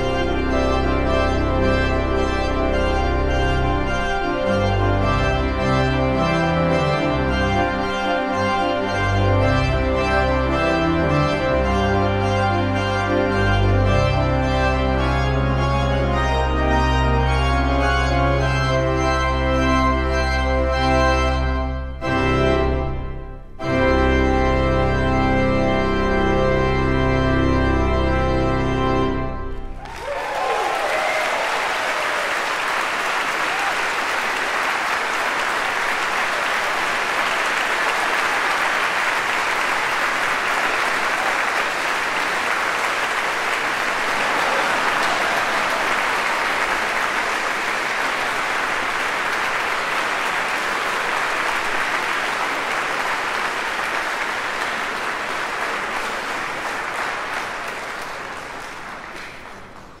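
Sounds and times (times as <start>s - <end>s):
audience applauding: 29.7s - 60.0s.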